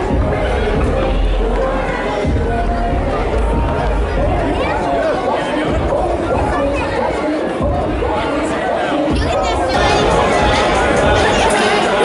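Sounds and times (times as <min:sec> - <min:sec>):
crowd chatter in a hall: 0:00.0 - 0:12.0.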